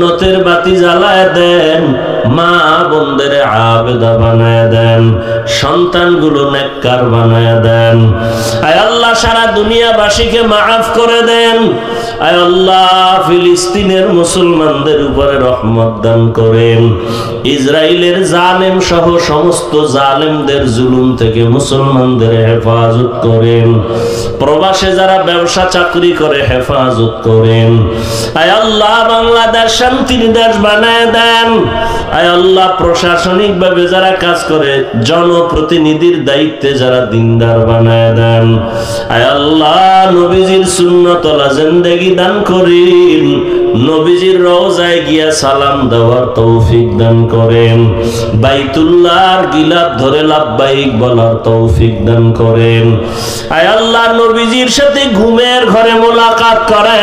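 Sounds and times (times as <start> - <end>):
man chanting into a microphone: 0.0 - 57.0.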